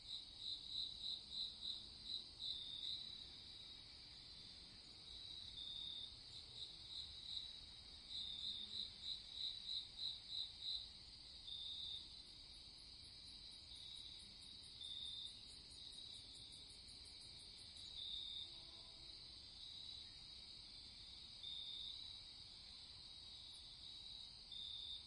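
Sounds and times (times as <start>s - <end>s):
crickets chirping: 0.0s - 25.0s.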